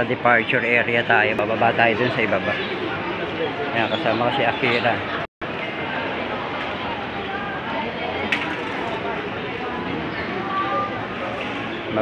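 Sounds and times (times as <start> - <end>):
crowd chatter in a large hall: 0.0 - 12.0.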